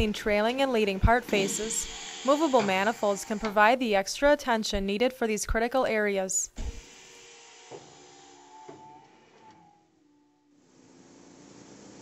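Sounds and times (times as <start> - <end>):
conveyor motor whir: 1.0 - 3.6, 6.7 - 12.0.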